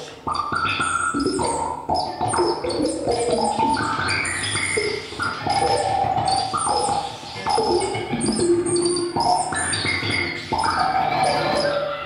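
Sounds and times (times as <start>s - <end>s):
experimental electronic music: 0.0s - 12.0s
high chirping tones: 0.3s - 12.0s.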